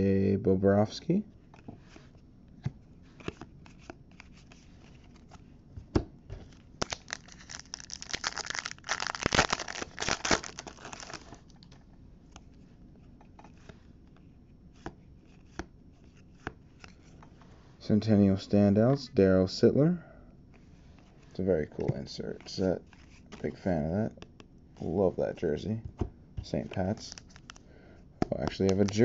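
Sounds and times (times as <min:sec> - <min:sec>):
foil wrapper crinkling: 0:06.8 - 0:11.5
cards clicking when handled: 0:28.2 - 0:29.0.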